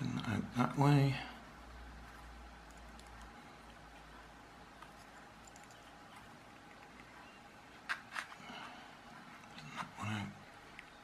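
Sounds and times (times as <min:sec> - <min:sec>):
faint handling sounds: 0:02.0 - 0:11.0.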